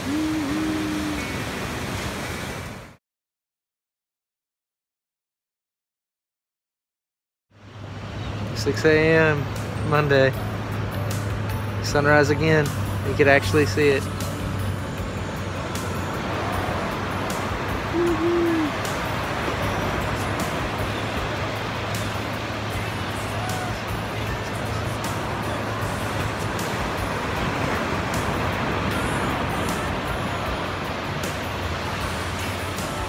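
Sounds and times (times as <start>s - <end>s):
short pitched call: 0.0s - 1.3s, 18.0s - 18.8s
wind rumbling on microphone: 0.0s - 2.9s
ocean surf breaking: 0.0s - 3.0s, 15.4s - 33.0s.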